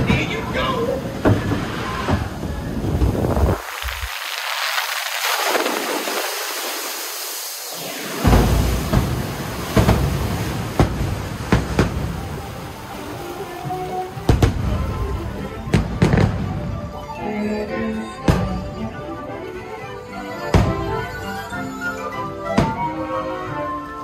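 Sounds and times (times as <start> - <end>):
loud water splash: 0.0 - 17.0
rushing air and water: 0.0 - 24.0
fireworks bangs: 1.2 - 12.4, 14.2 - 15.0, 15.7 - 16.6.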